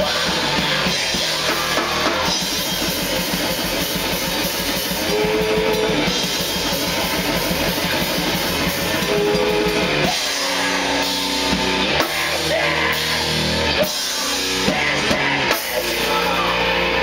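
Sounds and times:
electric guitar: 0.0 - 17.0
fast dense drumming: 0.0 - 17.0.

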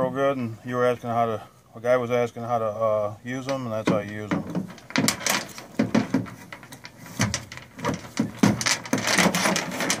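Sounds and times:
metal chain clanking and rattling: 4.1 - 10.0.

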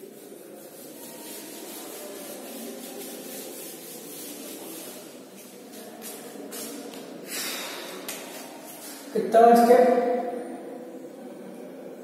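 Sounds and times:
eraser rubbing on whiteboard: 0.0 - 7.0.

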